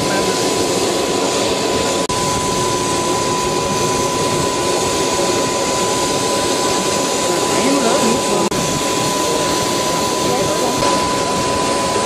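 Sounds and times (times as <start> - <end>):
aircraft engines rushing: 0.0 - 12.0
high engine whine: 0.0 - 12.0
indistinct voices: 7.2 - 8.6.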